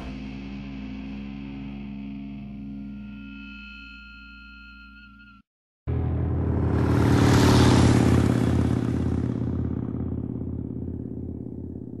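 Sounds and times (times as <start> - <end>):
rush of noise: 5.9 - 10.0
motorcycle engine running: 5.9 - 12.0.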